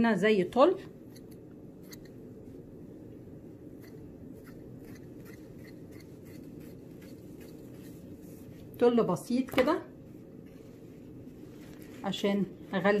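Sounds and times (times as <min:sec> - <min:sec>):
steady low hum: 0:00.0 - 0:13.0
fabric rustling: 0:05.4 - 0:13.0.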